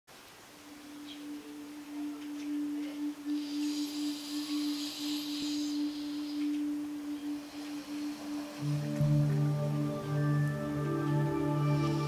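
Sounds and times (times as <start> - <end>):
soft hiss: 0.1 - 12.0
sustained ringing tone: 0.7 - 12.0.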